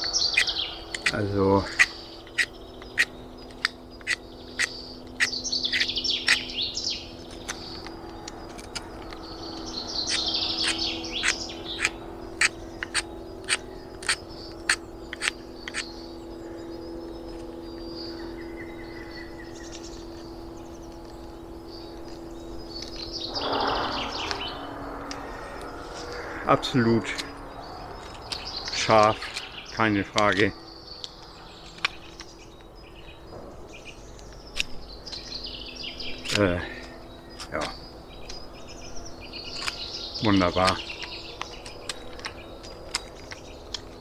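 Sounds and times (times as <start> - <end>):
knife carving wood clicks: 0.4 - 6.5, 7.3 - 15.9, 31.0 - 32.7, 34.2 - 35.3, 39.6 - 39.8, 40.6 - 44.0.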